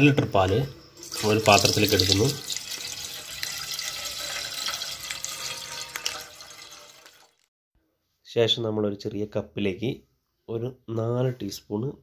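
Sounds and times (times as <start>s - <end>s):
milk pouring into a metal pot: 1.0s - 7.4s.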